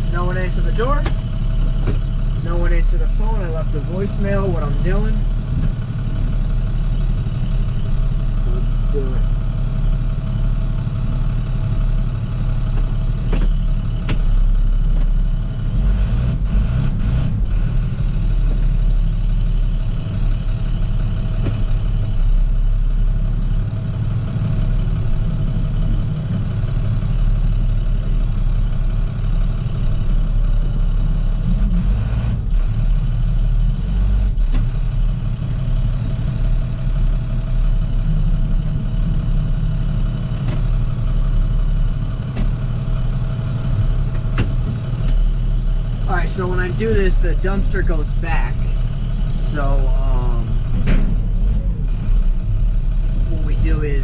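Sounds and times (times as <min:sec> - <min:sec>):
truck engine running at low revs: 0:00.0 - 0:54.0.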